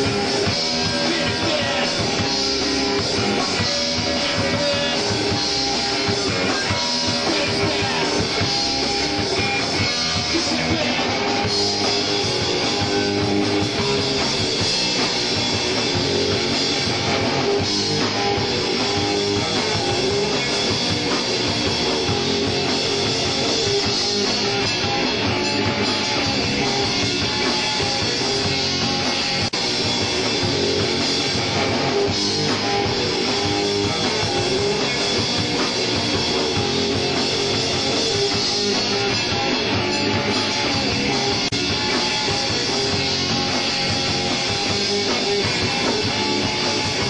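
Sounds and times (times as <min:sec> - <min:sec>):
drum kit: 0:00.0 - 0:47.0
electric guitar: 0:00.0 - 0:47.0.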